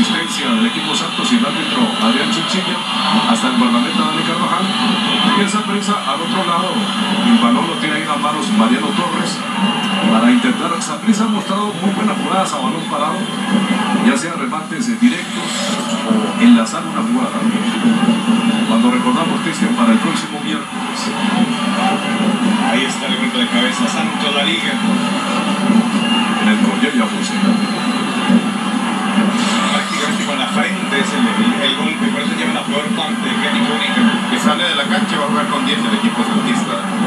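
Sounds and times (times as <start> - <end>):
stadium crowd murmur through tv: 0.0 - 37.0.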